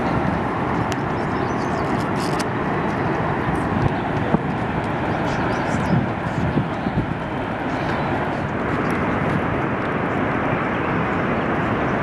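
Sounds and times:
low uneven rumble: 0.0s - 12.0s
waterfall roaring: 0.0s - 12.0s.

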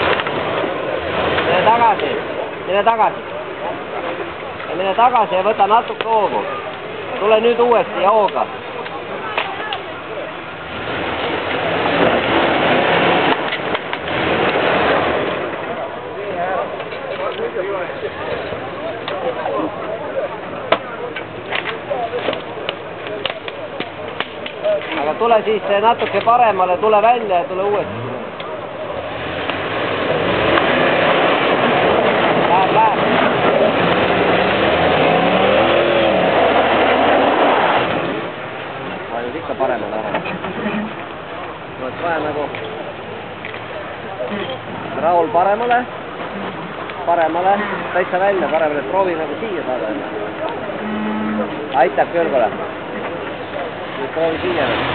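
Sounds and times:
pickup truck engine under load: 0.0s - 54.9s.

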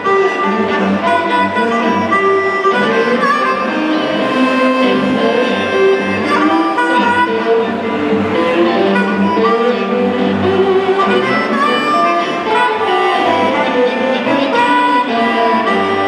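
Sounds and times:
amplified harmonica notes: 0.0s - 16.0s
live blues band playing: 0.0s - 16.0s.

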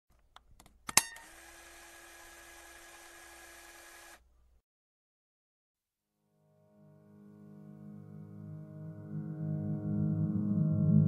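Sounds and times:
sharp click: 0.3s - 1.3s.

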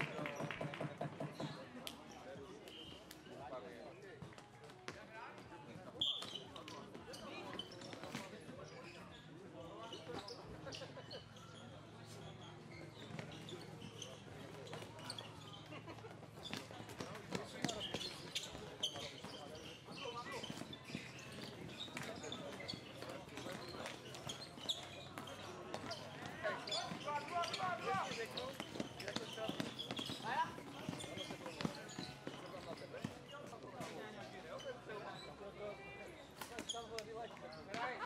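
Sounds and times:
footfalls on plastic court: 0.0s - 9.2s, 12.0s - 35.3s, 36.4s - 38.0s
players and spectators voices: 0.0s - 38.0s.

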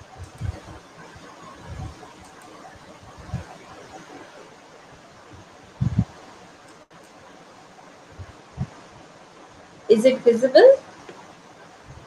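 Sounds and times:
microphone and room hiss: 0.0s - 12.0s
low thumps: 5.8s - 6.1s.

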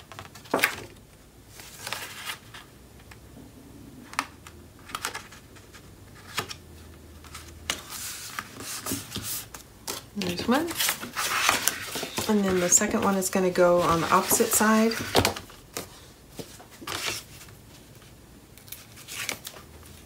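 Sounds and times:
paper rustling: 1.5s - 2.7s, 7.2s - 20.0s.

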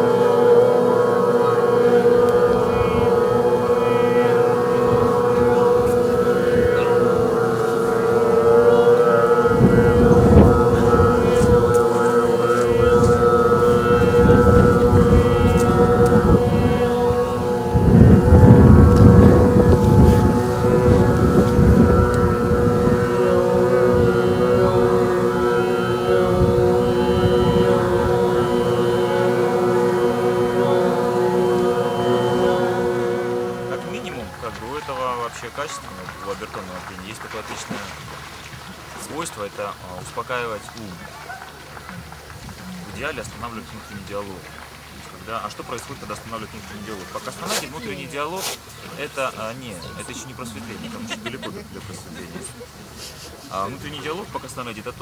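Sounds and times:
group overtone singing drone: 0.0s - 37.3s, 45.3s - 55.0s
wind buffeting microphone: 2.2s - 31.7s.

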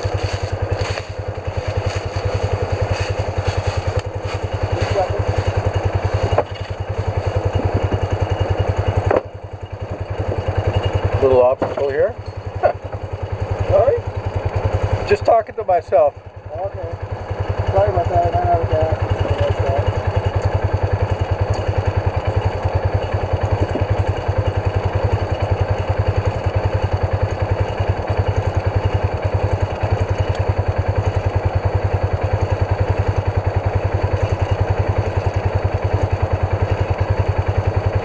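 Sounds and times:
engine idling: 0.0s - 38.0s.

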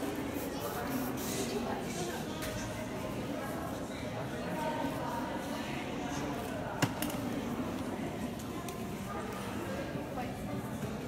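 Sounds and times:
indistinct chatter in a hall: 0.0s - 11.0s.

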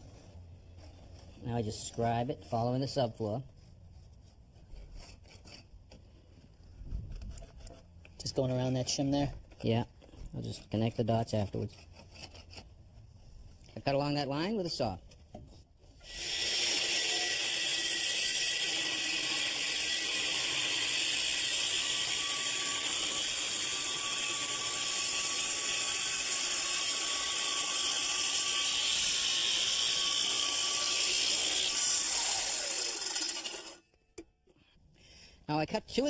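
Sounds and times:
power saw cutting wood: 16.0s - 33.8s.

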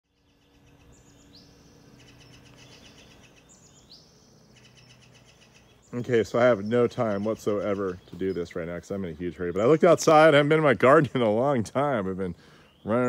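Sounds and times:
bird chirps and trills: 0.1s - 13.0s
birdsong with rising whistle: 0.1s - 13.0s.

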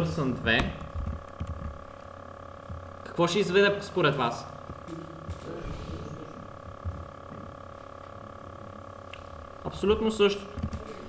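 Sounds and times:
faint electrical hum: 0.0s - 11.0s
computer keyboard keystrokes: 1.0s - 1.8s.

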